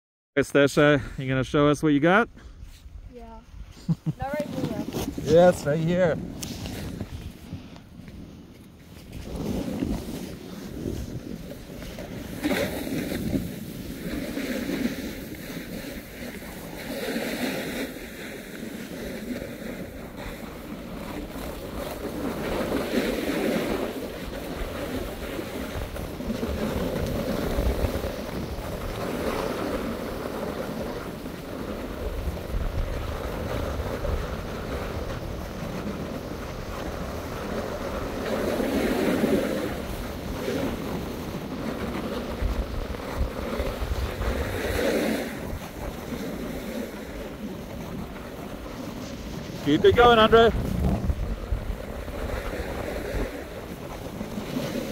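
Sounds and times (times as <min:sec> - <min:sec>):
wind buffeting microphone: 0:02.1 - 0:54.9
skis scraping on snow: 0:03.7 - 0:54.9.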